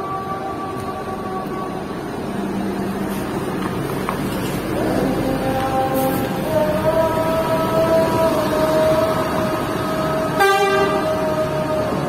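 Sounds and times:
coach bus engine pulling away: 0.0s - 12.0s
short horn toot: 10.4s - 11.0s.

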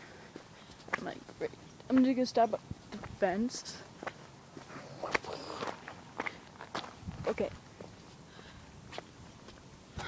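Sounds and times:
footsteps on ground: 0.3s - 8.2s, 8.9s - 9.7s.

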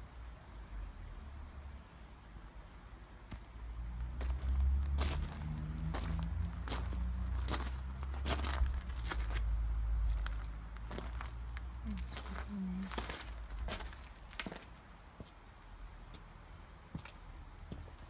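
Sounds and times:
footsteps on gravel and paving: 4.1s - 15.4s, 16.9s - 18.0s.

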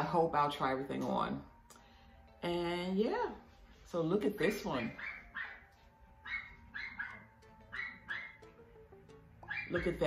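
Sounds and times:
faint music: 0.0s - 10.0s
dog barking: 4.8s - 8.4s, 9.4s - 9.8s.

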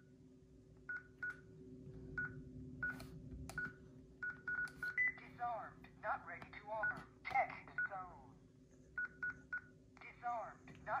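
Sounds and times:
keypad beeps: 3.6s - 5.2s, 9.0s - 9.7s.

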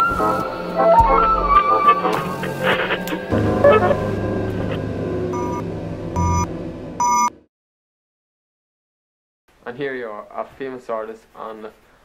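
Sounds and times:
low held music drone: 0.0s - 7.5s
short electronic beeps: 5.4s - 5.6s, 6.2s - 7.3s.

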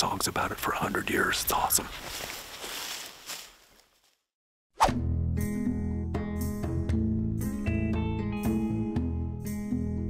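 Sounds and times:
faint rustling outdoors: 0.0s - 4.3s.

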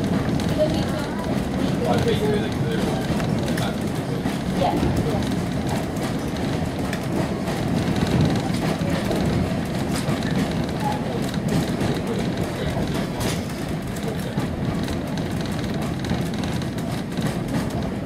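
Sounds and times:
train carriage rumble: 0.0s - 18.0s
wheels clicking on track: 0.0s - 18.0s.

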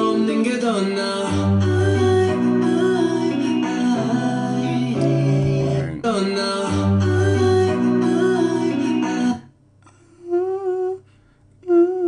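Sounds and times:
pop song with male singer: 0.0s - 9.5s
man humming a held note: 10.2s - 11.0s, 11.6s - 12.0s.

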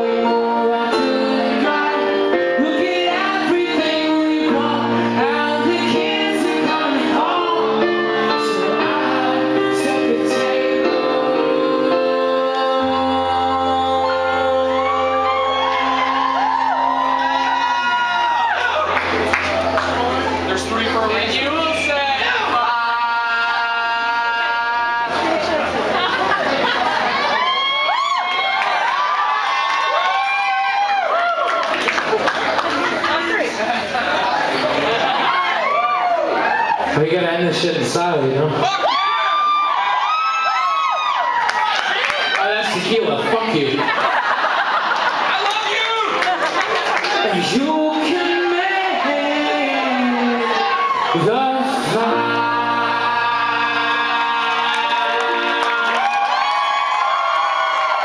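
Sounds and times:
live band holding chords: 0.0s - 58.0s
crowd cheering and whooping: 14.0s - 21.0s, 21.9s - 37.1s, 38.6s - 58.0s.

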